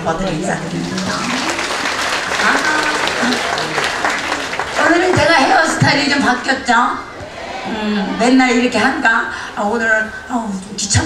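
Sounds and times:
voices: 0:00.0 - 0:11.0
audience applauding: 0:00.3 - 0:06.4.

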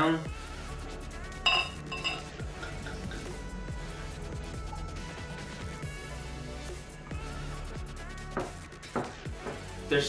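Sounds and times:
background music: 0:00.0 - 0:10.0
bottle clinking against glass: 0:01.5 - 0:02.9.

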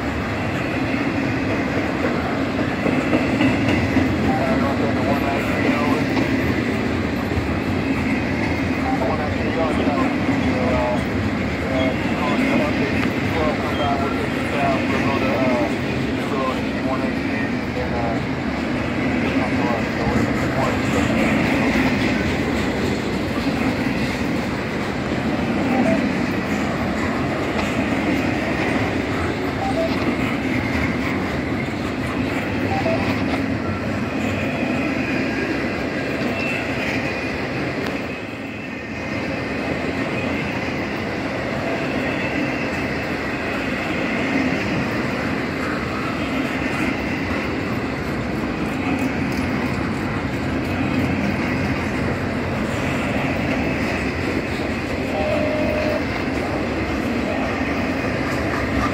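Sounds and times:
freight train wheels on rail: 0:00.0 - 0:58.9.

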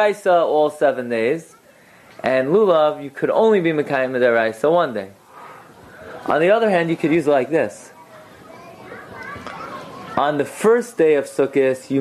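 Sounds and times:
close speech: 0:00.0 - 0:12.0
distant high-pitched voices: 0:05.2 - 0:12.0.

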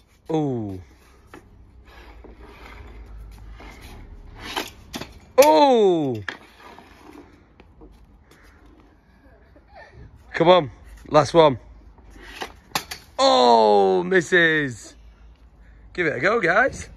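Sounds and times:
hockey stick scraping on ice: 0:01.8 - 0:05.2, 0:06.2 - 0:07.5.

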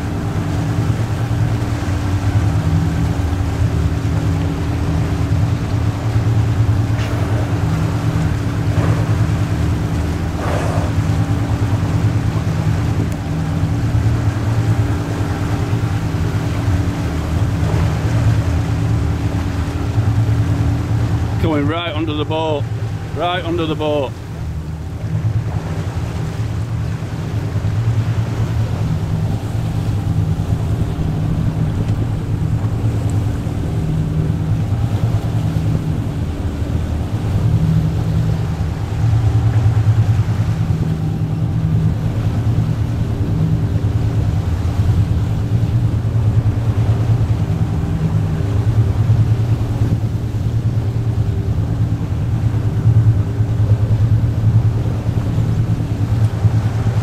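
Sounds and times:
boat engine humming: 0:00.0 - 0:57.0.

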